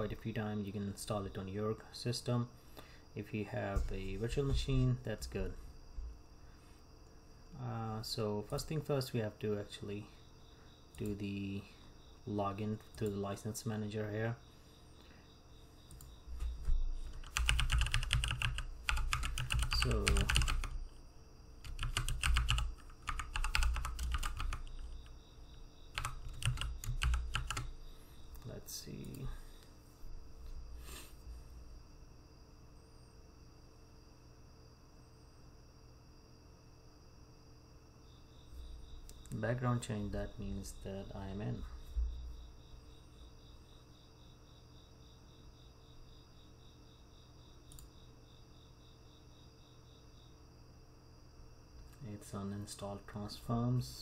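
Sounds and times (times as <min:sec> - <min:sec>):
computer keyboard typing: 0:15.9 - 0:20.8, 0:21.6 - 0:25.2, 0:25.9 - 0:27.7.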